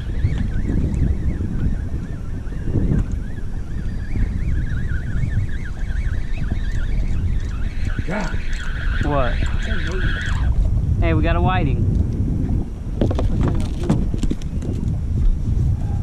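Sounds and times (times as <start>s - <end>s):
faint wavering high whine: 0.0s - 10.7s
wind buffeting microphone: 0.0s - 16.0s.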